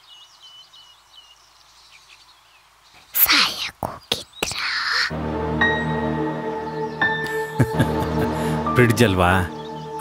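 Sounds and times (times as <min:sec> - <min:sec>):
faint birds chirping: 0:00.0 - 0:10.0.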